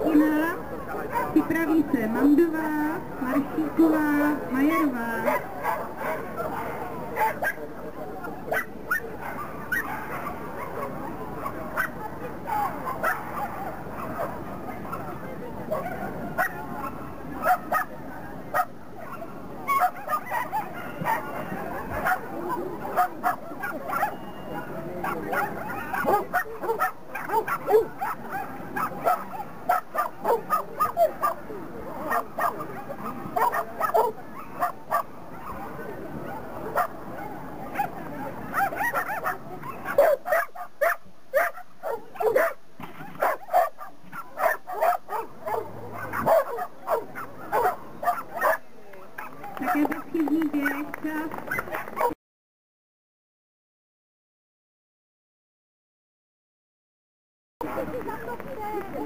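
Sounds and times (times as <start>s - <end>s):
dog barking: 0.9s - 1.4s, 5.2s - 7.6s, 8.5s - 14.4s, 15.7s - 16.6s, 17.4s - 17.9s, 18.6s - 24.3s, 25.0s - 31.4s, 32.1s - 35.7s, 36.3s - 37.9s, 38.5s - 42.6s, 43.2s - 48.6s, 51.5s - 52.2s.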